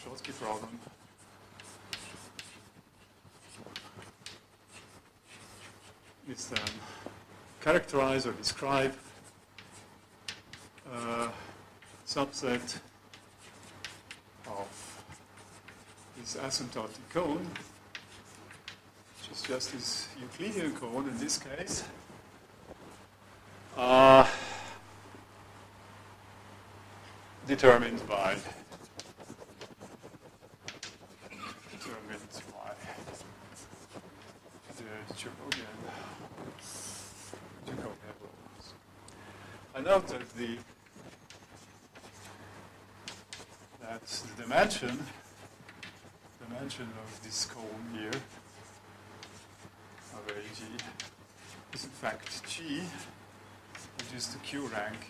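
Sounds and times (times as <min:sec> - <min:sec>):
chalk scratching on blackboard: 0:00.1 - 0:06.8, 0:07.8 - 0:22.1, 0:27.5 - 0:38.1, 0:39.8 - 0:55.0.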